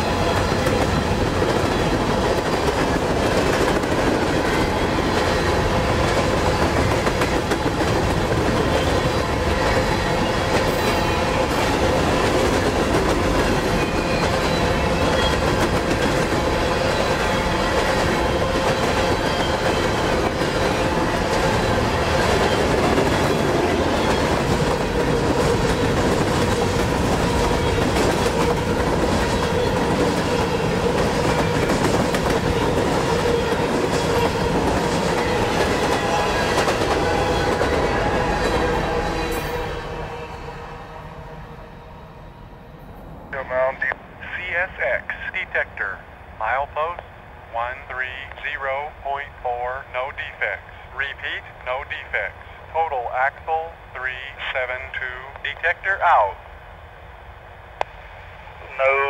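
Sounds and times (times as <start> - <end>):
steel train wheels clattering on rail: 0.0 - 40.0.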